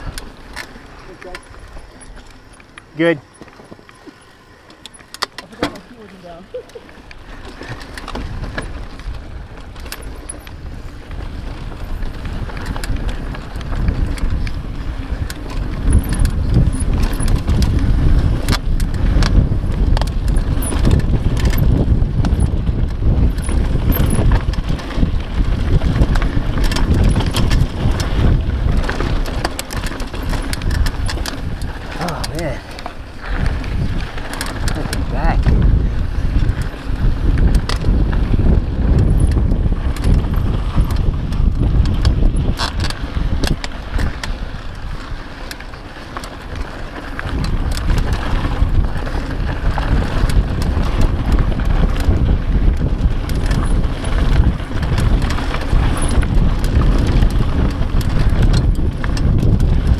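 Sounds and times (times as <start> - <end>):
bike chain and frame rattling: 0.0 - 59.9
bike tyre noise on dirt: 0.0 - 59.9
wind rumbling on microphone: 0.0 - 59.9.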